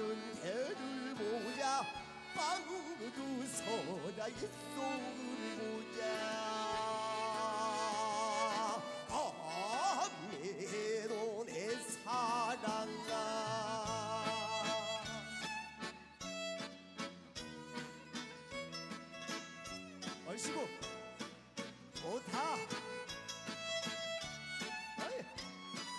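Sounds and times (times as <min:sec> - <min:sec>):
fusion band music: 0:00.0 - 0:25.9.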